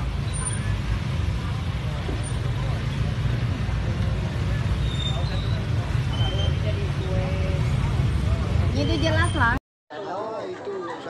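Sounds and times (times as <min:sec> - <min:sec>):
motorbikes rumbling: 0:00.0 - 0:09.6
faint voices: 0:00.0 - 0:11.0.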